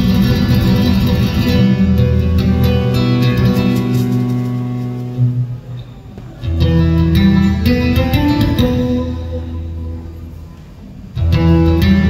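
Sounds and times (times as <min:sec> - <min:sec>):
solo flamenco guitar: 0:00.0 - 0:12.0.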